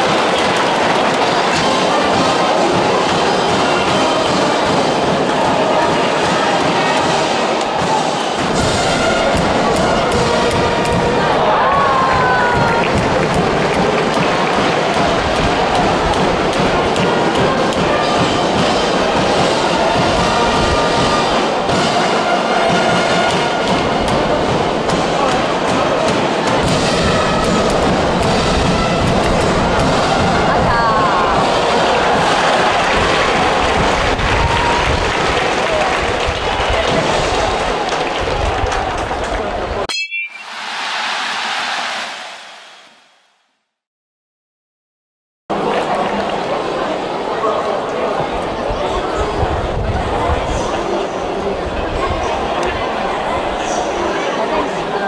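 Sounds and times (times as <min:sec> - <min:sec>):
cheering section music: 0:00.0 - 0:39.1, 0:39.8 - 0:43.1
stadium crowd cheering: 0:00.0 - 0:43.3, 0:45.5 - 0:55.0.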